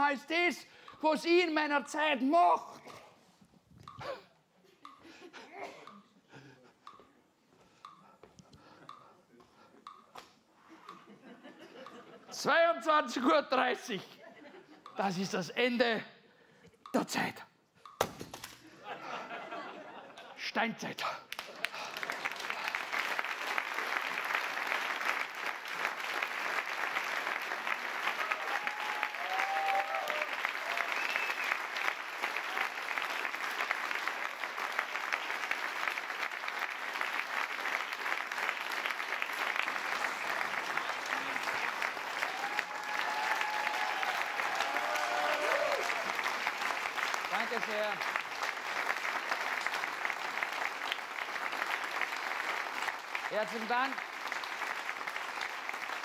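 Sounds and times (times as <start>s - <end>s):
audience applauding: 21.3s - 56.0s.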